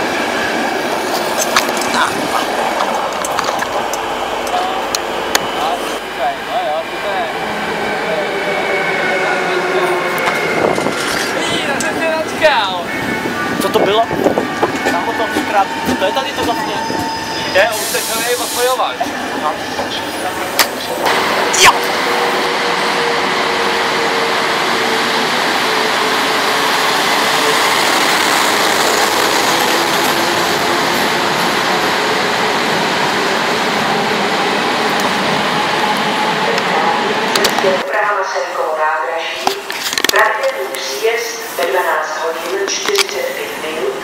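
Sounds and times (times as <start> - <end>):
loud rush of train noise: 0.0 - 44.0.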